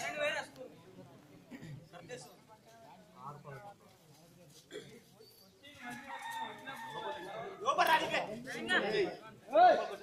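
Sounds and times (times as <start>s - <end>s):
rooster crowing: 5.9s - 7.4s.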